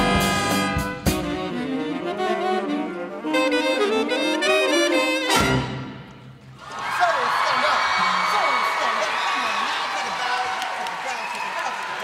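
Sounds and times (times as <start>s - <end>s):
jazz big band playing: 0.0s - 6.4s.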